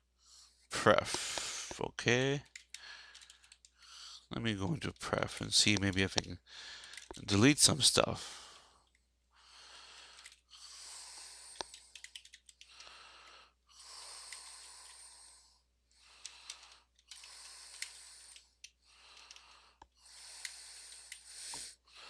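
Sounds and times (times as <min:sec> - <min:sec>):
person breathing softly: 0:00.1 - 0:01.8, 0:02.5 - 0:04.3, 0:06.4 - 0:07.2, 0:08.2 - 0:22.0.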